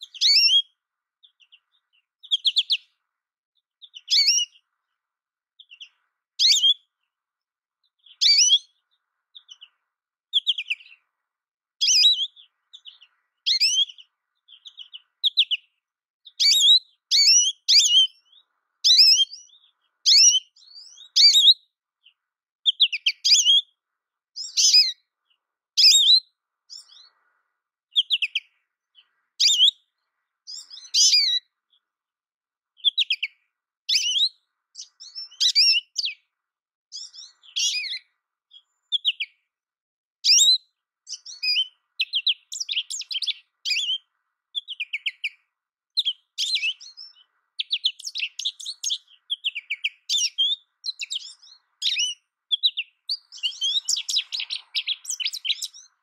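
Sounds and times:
goldfinch twittering calls: 0.0 - 2.9, 3.8 - 4.7, 5.6 - 6.9, 7.9 - 11.0, 11.8 - 23.7, 24.4 - 25.0, 25.8 - 27.4, 28.0 - 31.8, 32.8 - 36.2, 36.9 - 39.4, 40.2 - 45.4, 46.0 - 56.0.

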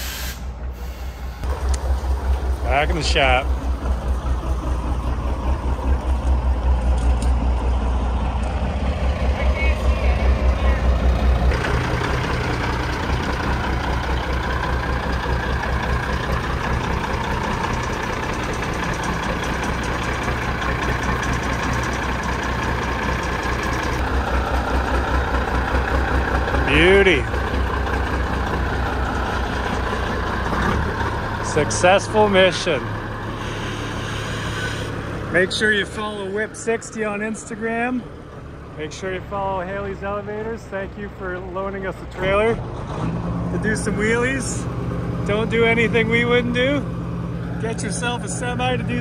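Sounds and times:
diesel truck engine rumbling: 0.0 - 49.0
brief squeal: 33.3 - 35.0.

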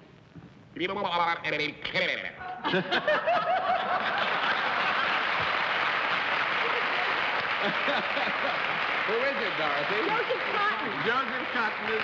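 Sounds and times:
audience laughing: 2.6 - 8.9
audience applause: 3.6 - 12.0.

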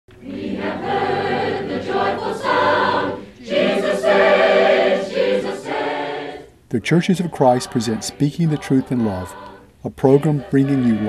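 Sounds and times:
choir singing: 0.1 - 11.0.

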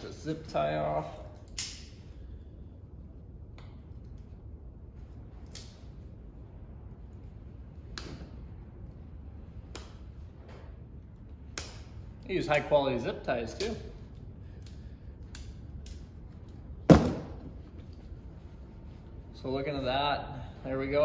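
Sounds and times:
low steady hum: 0.0 - 21.0.

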